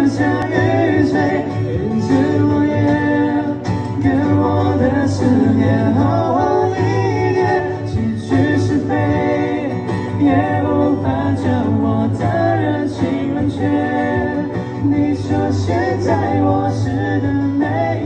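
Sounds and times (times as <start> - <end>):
man singing: 0.0 - 18.0
steady bass line: 0.0 - 18.0.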